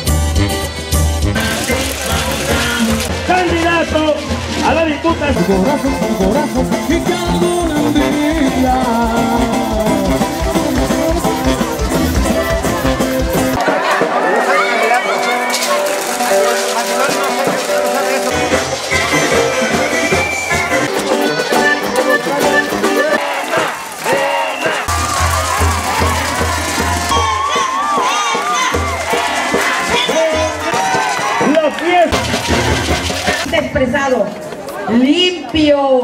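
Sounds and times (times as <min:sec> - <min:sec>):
pulsing bass line: 0:00.0 - 0:13.6, 0:24.9 - 0:27.6
upbeat live band music: 0:00.0 - 0:34.1.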